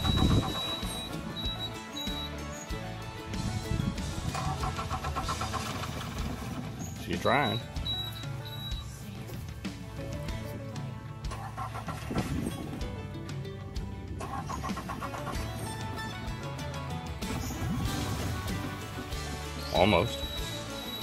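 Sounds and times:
outboard engine cranking: 0.0s - 2.4s, 3.7s - 9.8s, 11.2s - 21.0s
background music: 0.0s - 21.0s.

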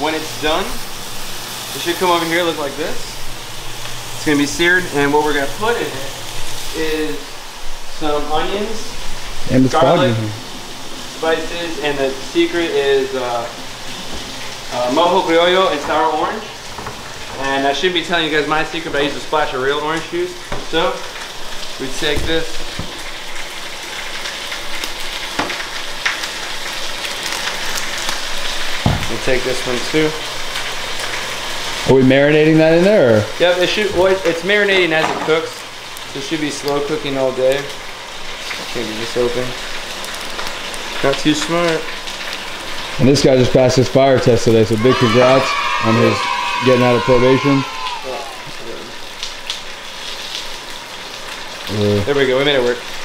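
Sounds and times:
meat sizzling in a pot: 0.0s - 53.0s
pork searing in a hot pan: 0.0s - 53.0s
sharp knocks: 28.8s - 29.2s.

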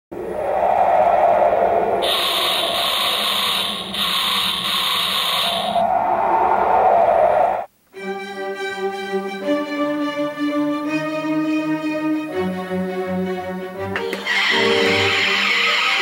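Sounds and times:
loud rushing noise: 0.1s - 7.7s.

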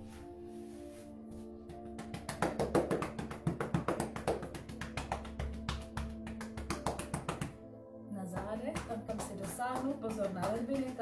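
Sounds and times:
background music: 0.0s - 11.0s
palms patting chest: 1.8s - 7.6s, 8.3s - 11.0s
woman's voice: 8.1s - 11.0s.

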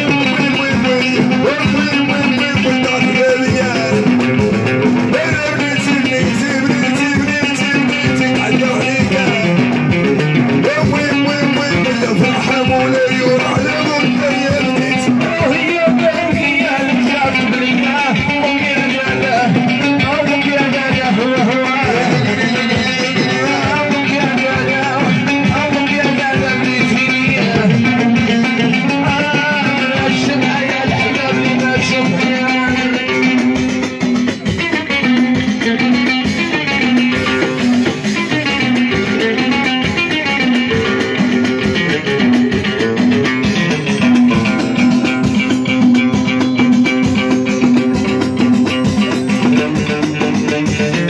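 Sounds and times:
frame drums and tambourine beat: 0.0s - 51.0s
man singing: 0.0s - 51.0s.

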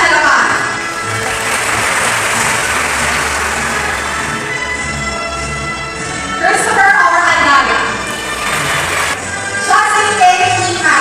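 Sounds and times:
background music: 0.0s - 11.0s
audience applauding: 0.8s - 5.2s, 8.0s - 9.2s.

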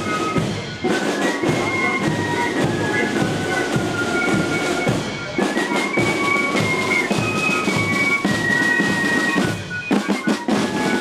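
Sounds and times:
flute and drum marching band: 0.0s - 11.0s.

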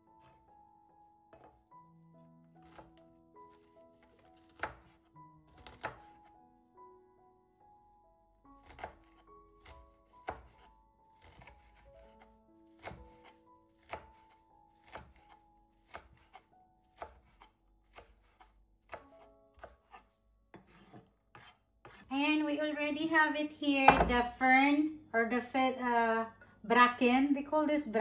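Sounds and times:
knife chopping on wooden board: 1.3s - 1.6s, 2.6s - 3.0s, 4.0s - 6.2s, 8.6s - 22.1s, 23.9s - 24.3s.

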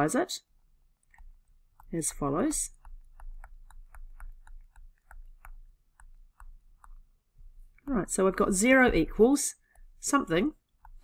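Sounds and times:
stylus tapping on tablet: 1.1s - 7.2s.

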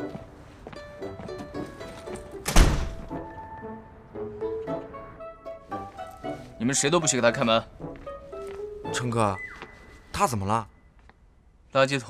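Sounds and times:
soft background music: 0.0s - 11.0s
door slamming: 2.4s - 3.2s.

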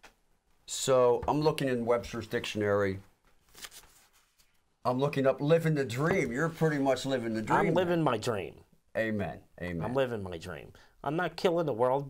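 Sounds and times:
man talking: 0.7s - 3.1s, 4.9s - 12.0s
book pages rustling: 3.2s - 4.7s.

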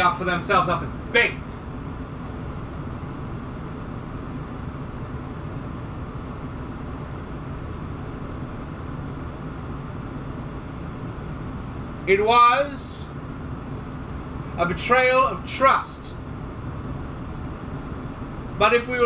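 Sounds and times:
room noise hum and hiss: 0.0s - 19.0s.

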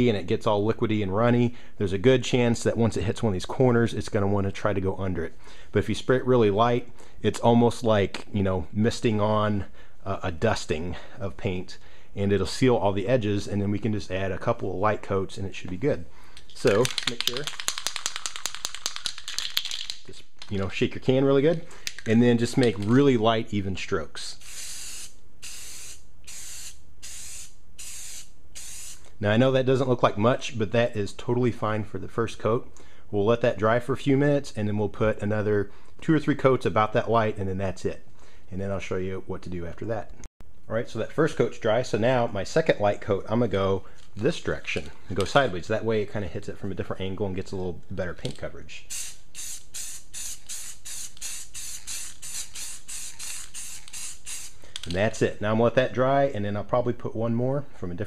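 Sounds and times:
aerosol spray can hissing: 24.4s - 29.1s, 48.9s - 54.8s.

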